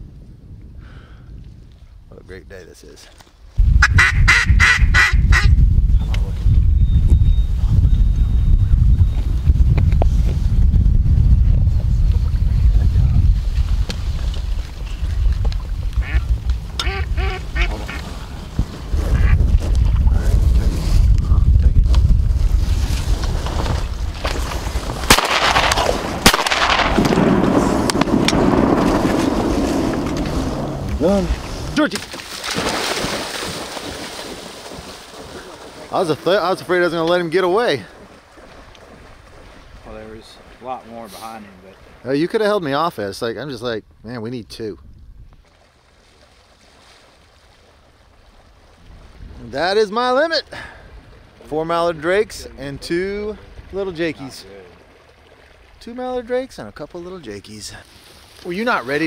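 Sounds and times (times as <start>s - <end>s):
wind buffeting microphone: 0.0s - 2.6s, 3.4s - 31.9s, 43.8s - 45.5s, 48.6s - 54.7s
ducks quacking: 3.8s - 5.6s, 16.0s - 18.3s, 19.0s - 19.4s
splashing through shallow water: 21.8s - 42.5s, 45.4s - 57.2s
shotgun shots: 25.0s - 29.2s.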